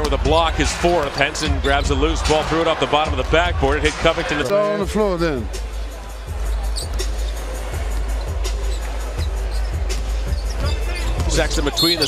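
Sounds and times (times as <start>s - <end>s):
arena music: 0.0s - 12.0s
crowd noise: 0.0s - 12.0s.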